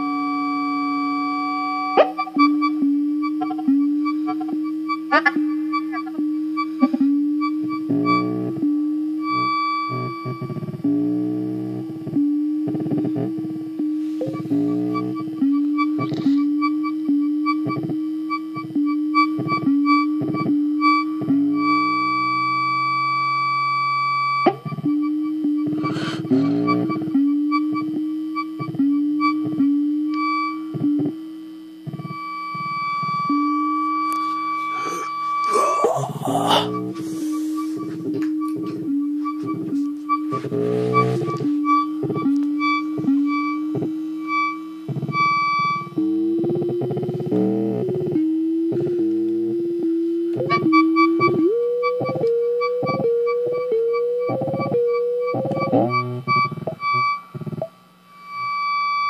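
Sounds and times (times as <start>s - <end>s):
steady high synth tone: 0.0s - 59.0s
synthesizer pulsed notes: 0.0s - 59.0s.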